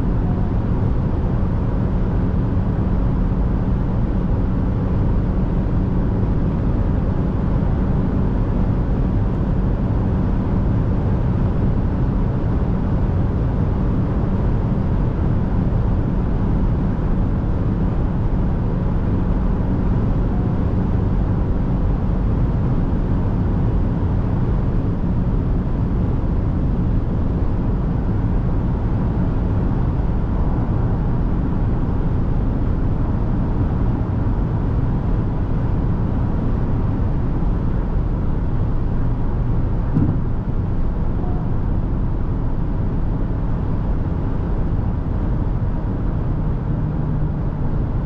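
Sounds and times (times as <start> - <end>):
tyre and wind noise in car: 0.0 - 48.0
faint knock: 40.0 - 40.2.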